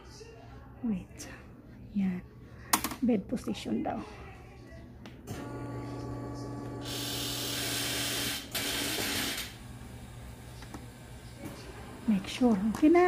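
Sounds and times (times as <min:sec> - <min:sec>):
bed motor humming: 0:05.2 - 0:13.0.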